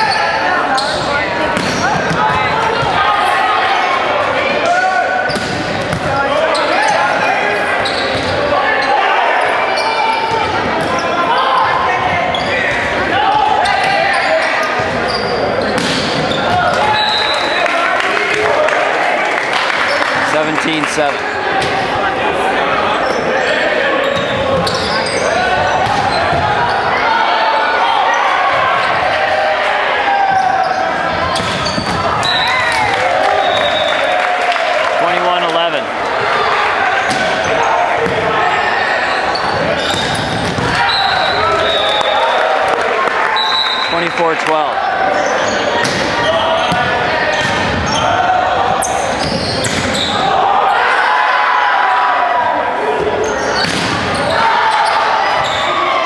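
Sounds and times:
voices echoing in a gym: 0.0 - 56.0
volleyball hits: 0.8 - 3.0, 4.6 - 6.2, 15.6 - 17.5, 25.6 - 26.6, 31.2 - 33.8, 37.0 - 38.4, 39.4 - 42.1, 45.7 - 48.0, 49.1 - 50.1, 53.6 - 54.2
sneaker squeaks on hardwood: 13.6 - 17.3, 24.0 - 26.8, 30.3 - 32.5, 39.1 - 41.9, 48.8 - 50.2, 53.2 - 55.8.

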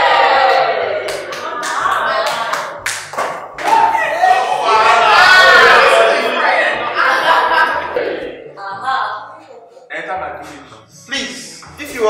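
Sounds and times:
people clapping: 0.0 - 4.4
music: 0.0 - 12.0.

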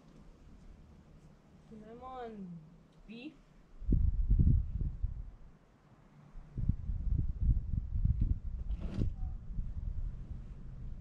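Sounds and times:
wind buffeting microphone: 3.8 - 5.4, 6.5 - 11.0
brief rustle: 8.6 - 9.2.

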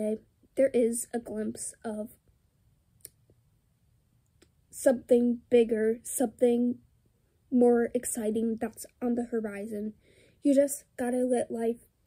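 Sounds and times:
woman's voice: 0.0 - 2.2, 4.7 - 6.8, 7.5 - 11.9.

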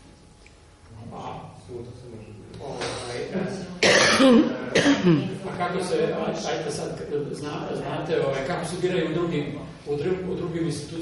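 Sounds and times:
person coughing: 3.8 - 5.3.

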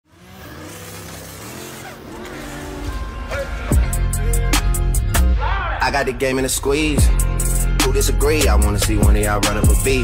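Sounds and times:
car engine accelerating: 0.0 - 5.0.

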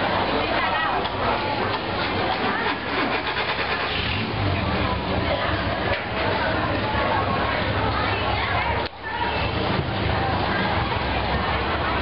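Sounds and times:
people's voices: 0.0 - 12.0
boat engine running: 1.3 - 12.0.

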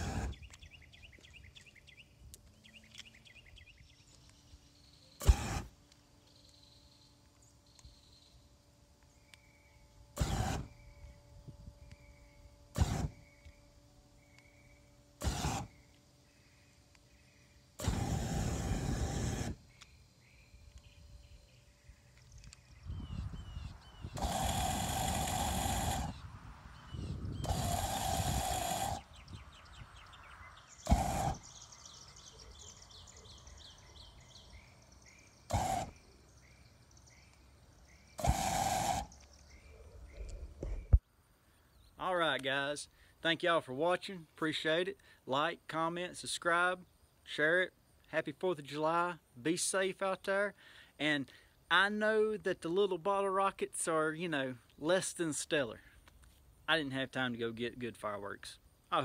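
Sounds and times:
faint birdsong: 0.0 - 59.0
exhaust flame bursts: 5.2 - 5.8, 17.7 - 19.6, 24.1 - 29.7, 30.7 - 31.7, 38.1 - 39.2.

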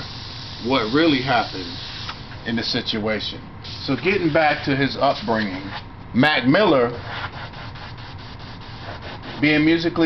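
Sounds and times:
pencil strokes rubbing on paper: 6.9 - 9.7.

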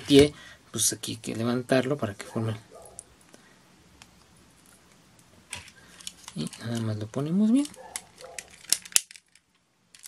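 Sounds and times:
faint handling noise: 1.8 - 10.0.

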